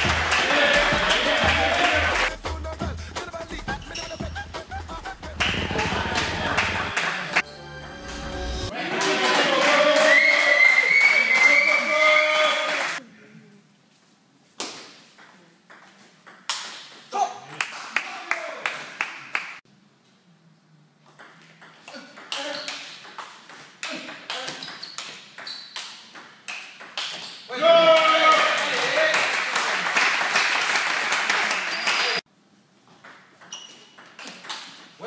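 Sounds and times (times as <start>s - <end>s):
people shouting and cheering: 0.0s - 2.3s, 5.4s - 7.4s, 8.7s - 13.0s, 27.5s - 29.4s.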